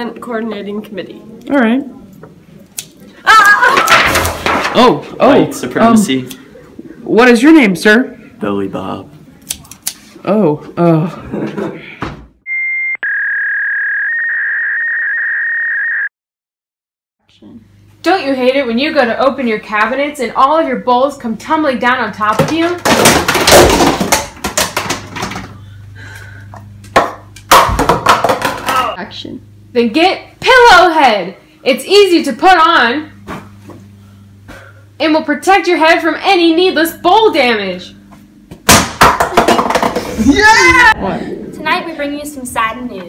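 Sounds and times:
steady low hum: 0.0 - 12.0, 17.3 - 43.0.

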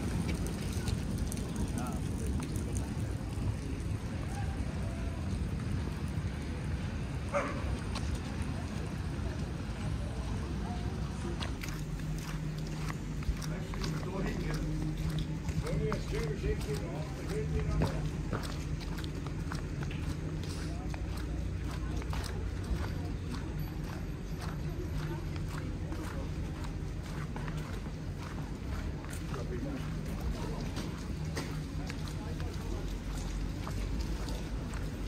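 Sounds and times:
footsteps on slushy pavement: 0.0 - 35.0
street ambience hum: 0.0 - 35.0.

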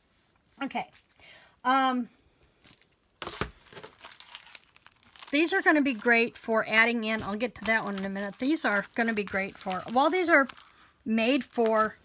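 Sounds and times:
plastic wrapping crinkling: 0.8 - 1.2, 2.6 - 12.0.

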